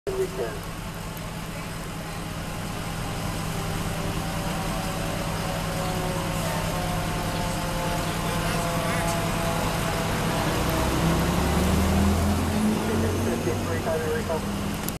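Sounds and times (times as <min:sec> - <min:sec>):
engine idling: 0:00.1 - 0:15.0
fire engine diesel approaching: 0:00.1 - 0:15.0.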